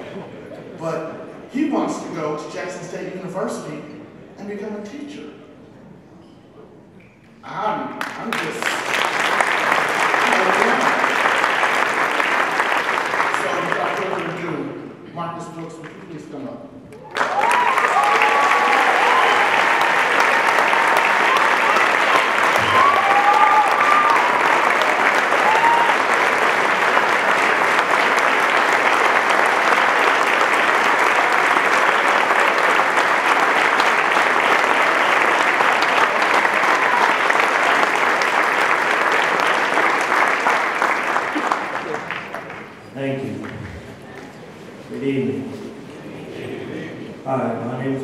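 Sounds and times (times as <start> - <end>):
audience applauding: 8.0 - 14.7, 16.9 - 44.3.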